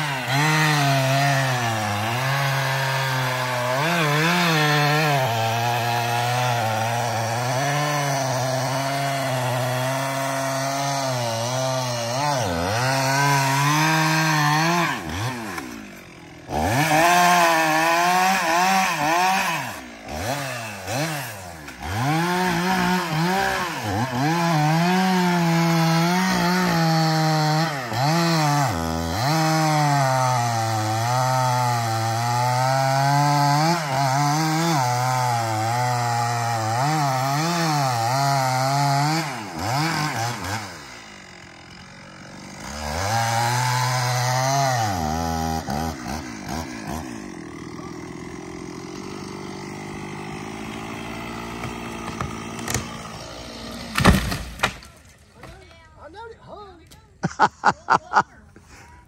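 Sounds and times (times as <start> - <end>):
chainsaw cutting wood: 0.0 - 55.8.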